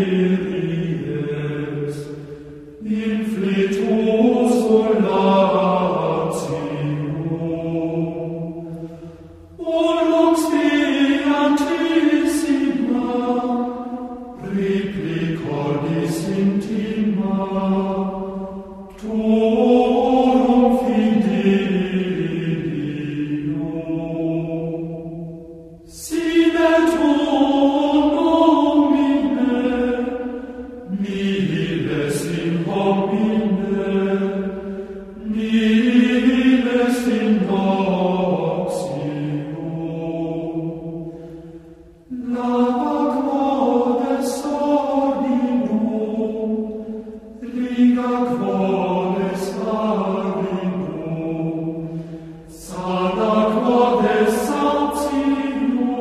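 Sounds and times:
voices chanting slow melody: 0.0 - 56.0.

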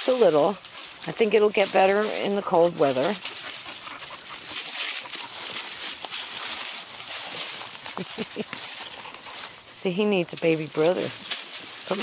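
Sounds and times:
dogs scuffling in dry leaves: 0.0 - 12.0.

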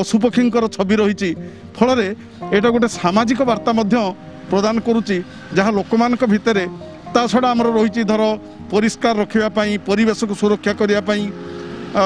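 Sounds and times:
person speaking: 0.0 - 11.4
background music with held notes: 0.0 - 12.0
steady noise: 1.4 - 8.7.

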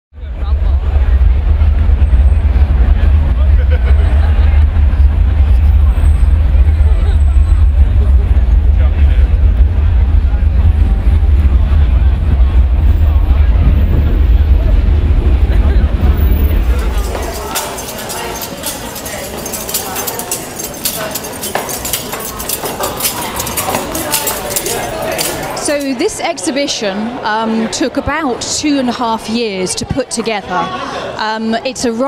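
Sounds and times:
low rumble: 0.2 - 20.0
crowd babble: 0.2 - 32.0.

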